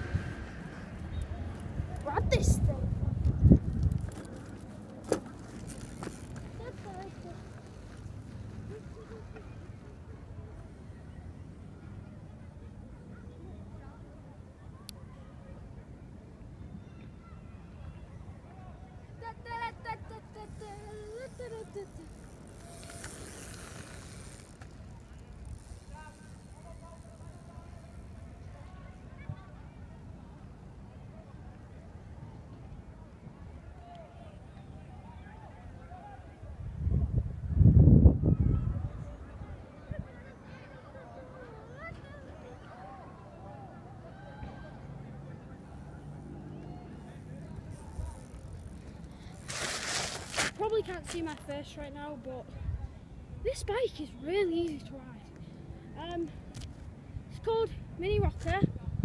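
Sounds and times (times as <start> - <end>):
wind rumble on microphone: 0.0 - 4.7, 36.5 - 40.1, 58.1 - 59.0
bicycle tyres rolling on gravel: 3.2 - 9.2, 20.5 - 28.2, 47.1 - 51.8.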